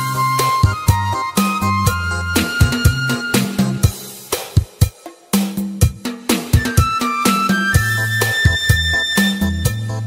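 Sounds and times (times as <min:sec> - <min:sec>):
bass notes: 0:00.0 - 0:04.1, 0:07.8 - 0:10.0
drum beats: 0:00.0 - 0:10.0.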